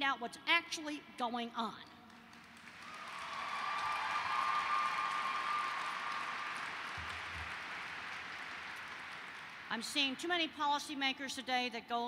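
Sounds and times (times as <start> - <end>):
audience applause: 2.3 - 9.7.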